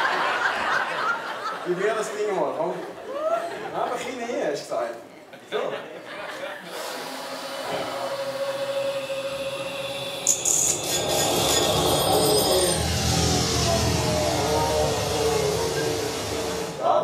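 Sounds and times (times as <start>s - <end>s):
low rumble with falling tones: 10.8s - 16.8s.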